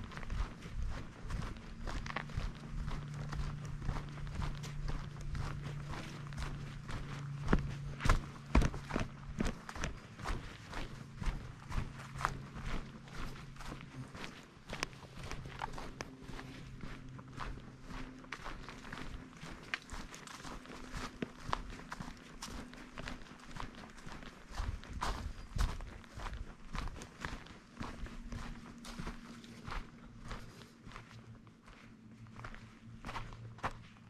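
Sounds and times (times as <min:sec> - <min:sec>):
boots crunching on dirt trail: 0:00.0 - 0:34.0
faint low hum: 0:00.0 - 0:34.0.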